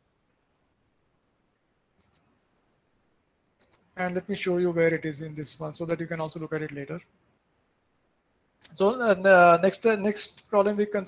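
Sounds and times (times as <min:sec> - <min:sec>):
faint computer mouse clicks: 0:02.0 - 0:02.4, 0:03.6 - 0:04.0.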